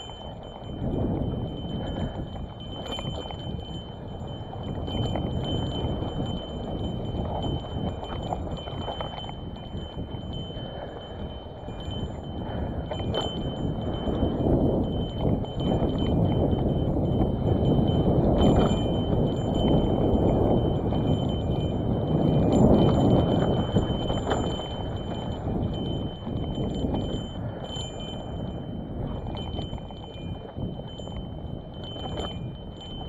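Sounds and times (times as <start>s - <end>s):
bike frame rattling: 0.0s - 33.0s.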